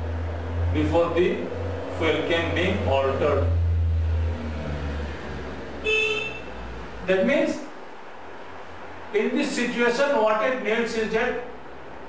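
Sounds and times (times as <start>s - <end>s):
low steady hum: 0.0s - 12.0s
horn toot: 5.8s - 6.5s.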